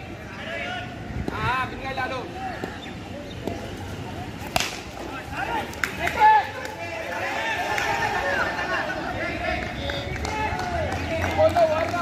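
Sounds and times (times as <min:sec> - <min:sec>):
players shouting: 0:00.0 - 0:12.0
cricket bat hitting ball: 0:04.4 - 0:05.1.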